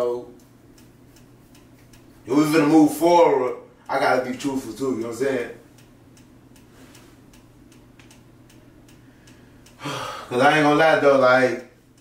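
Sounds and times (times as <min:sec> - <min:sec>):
faint even ticking: 0:00.0 - 0:10.8
low room hum: 0:00.0 - 0:12.0.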